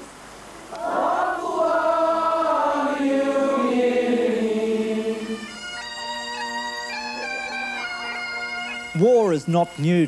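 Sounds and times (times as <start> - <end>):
bagpipe music: 2.5 - 10.0
bagpipe drone: 2.6 - 10.0.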